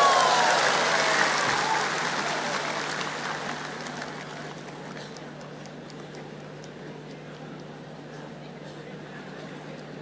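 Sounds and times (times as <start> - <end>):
audience cheering: 0.0 - 4.4
audience applauding: 0.0 - 5.5.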